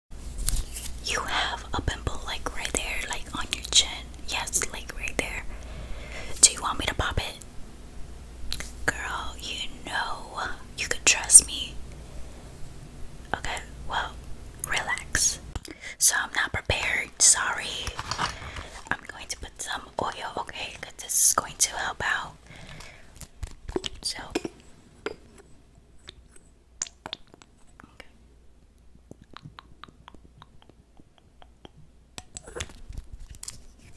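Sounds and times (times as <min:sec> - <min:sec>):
woman whispering: 0:01.0 - 0:05.5, 0:06.3 - 0:07.4, 0:08.8 - 0:11.8, 0:13.3 - 0:18.0, 0:18.8 - 0:22.4, 0:24.0 - 0:24.6, 0:27.8 - 0:28.2
sharp mouth clicks: 0:26.0 - 0:27.5, 0:29.1 - 0:32.8.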